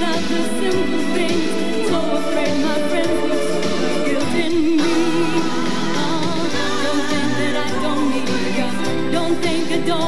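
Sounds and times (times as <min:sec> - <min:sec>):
live pop band playing: 0:00.0 - 0:10.0
woman singing: 0:00.0 - 0:10.0.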